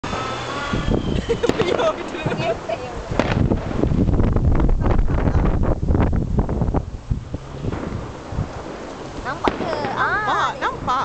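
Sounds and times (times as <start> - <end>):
low background rumble: 0.0 - 11.0
people talking: 1.2 - 3.2, 9.2 - 11.0.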